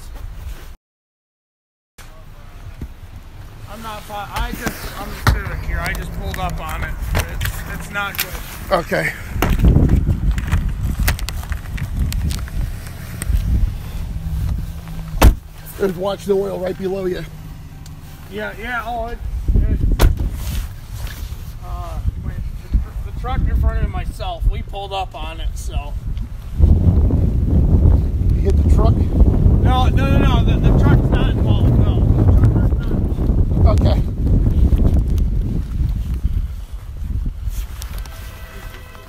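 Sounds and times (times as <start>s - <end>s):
phone microphone handling noise: 4.3s - 8.7s, 9.3s - 15.6s
wind rumble on microphone: 4.4s - 17.6s, 18.5s - 39.0s.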